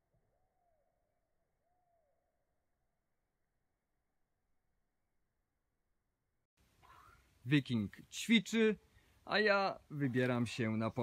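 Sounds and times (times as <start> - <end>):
distant bird calls: 0.2 - 2.4, 6.7 - 7.4.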